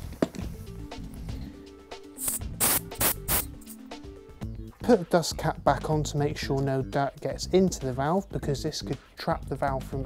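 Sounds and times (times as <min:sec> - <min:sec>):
background music held chord: 0:00.0 - 0:10.0
air hissing from tyre valve: 0:02.2 - 0:03.6.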